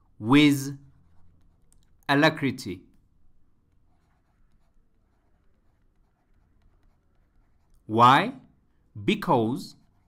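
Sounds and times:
stylus scratching on tablet: 0:00.6 - 0:02.1, 0:03.6 - 0:08.1, 0:09.4 - 0:10.0.

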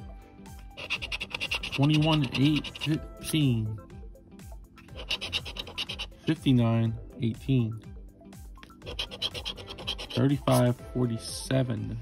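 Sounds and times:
scratching lottery ticket coating: 0:00.8 - 0:03.3, 0:04.8 - 0:06.2, 0:08.8 - 0:10.8.

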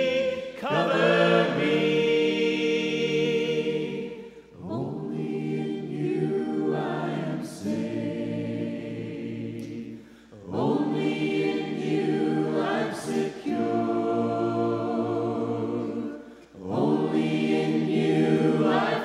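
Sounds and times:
congregation singing a hymn: 0:00.0 - 0:19.0.

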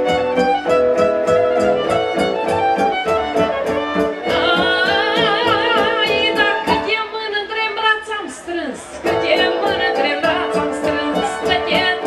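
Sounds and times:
violin: 0:00.0 - 0:08.1, 0:08.8 - 0:12.0
woman singing: 0:04.2 - 0:12.0.

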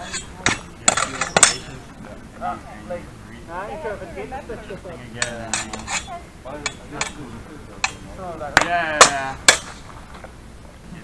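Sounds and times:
swords clashing metallic clinks: 0:00.0 - 0:01.8, 0:05.2 - 0:06.1.

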